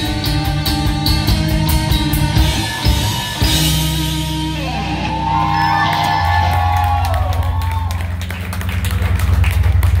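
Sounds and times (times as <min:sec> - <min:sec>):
low drone from amplifiers: 0:00.0 - 0:10.0.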